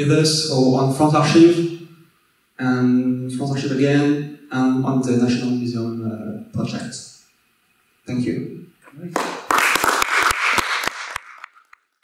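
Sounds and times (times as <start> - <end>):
audience applauding: 9.1 - 12.0.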